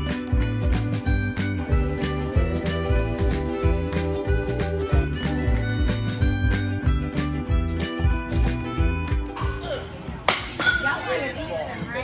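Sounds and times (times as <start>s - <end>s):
background music: 0.0s - 10.1s.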